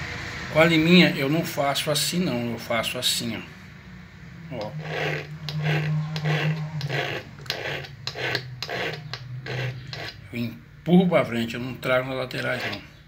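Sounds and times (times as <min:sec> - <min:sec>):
hand file rasping on steel: 0:04.6 - 0:10.2, 0:12.4 - 0:12.9.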